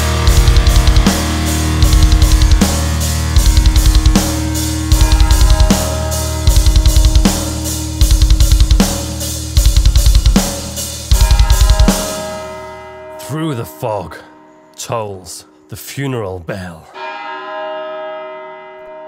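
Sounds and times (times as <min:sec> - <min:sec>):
cymbal crashes: 0:00.0 - 0:12.9
heavy metal band playing: 0:00.0 - 0:13.8
double bass drum rolls: 0:00.2 - 0:02.8, 0:03.4 - 0:04.3, 0:04.9 - 0:05.8, 0:06.4 - 0:12.2.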